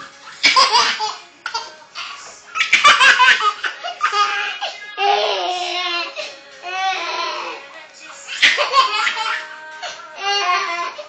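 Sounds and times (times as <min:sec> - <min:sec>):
baby laughing: 0:00.4 - 0:07.6, 0:08.3 - 0:09.5.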